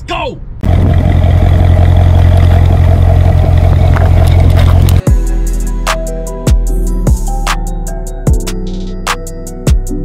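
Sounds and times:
car engine idling: 0.6 - 5.6.

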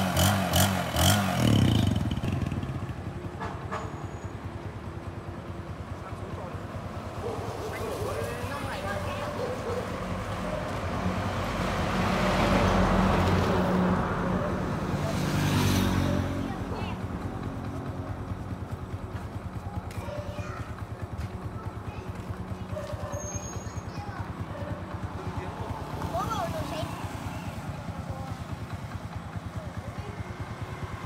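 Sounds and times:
motorcycle idling: 0.0 - 11.4, 14.1 - 31.0
large vehicle passing: 5.9 - 19.2, 23.4 - 31.0.

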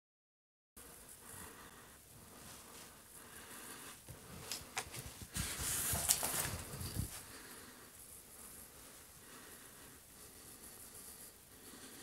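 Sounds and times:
rustling and scuffing movement: 3.9 - 7.5.

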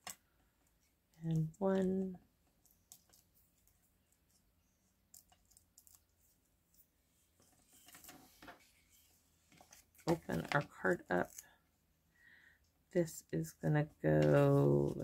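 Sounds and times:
soft paper rustle: 1.8 - 11.6.

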